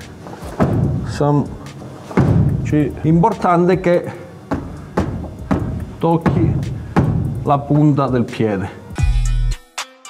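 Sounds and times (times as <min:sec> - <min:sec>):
music with steady drum beat: 0:04.5 - 0:08.4, 0:09.0 - 0:09.9.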